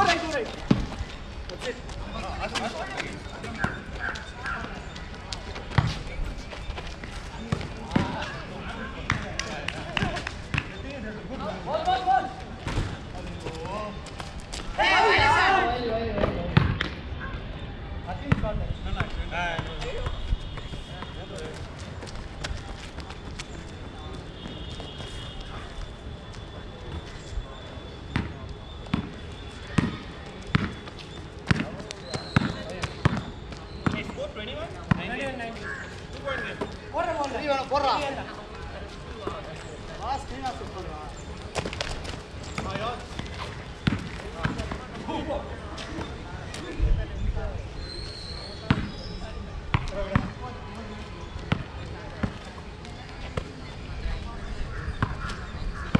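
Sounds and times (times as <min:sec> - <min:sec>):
basketball bouncing on concrete: 0:05.6 - 0:06.0, 0:09.1 - 0:09.4, 0:28.1 - 0:34.2, 0:34.8 - 0:35.2, 0:42.6 - 0:44.9, 0:48.6 - 0:49.0, 0:49.7 - 0:50.4, 0:55.0 - 0:55.9
players shouting: 0:14.6 - 0:16.2.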